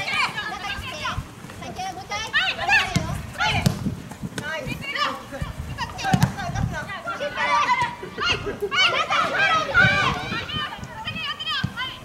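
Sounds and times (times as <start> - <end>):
women shouting and calling out: 0.0 - 3.8, 4.4 - 12.0.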